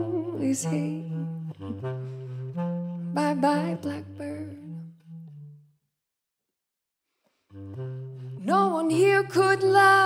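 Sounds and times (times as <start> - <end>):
bass clarinet jazz fill: 0.0 - 5.7, 7.5 - 10.0.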